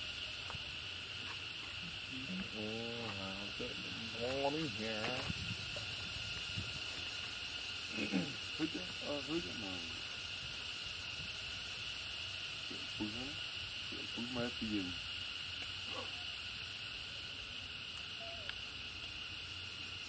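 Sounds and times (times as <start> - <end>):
high insect drone: 0.0 - 20.0.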